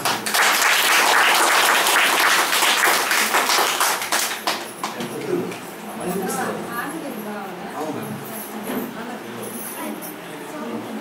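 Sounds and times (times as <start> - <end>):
children clapping: 0.0 - 5.6.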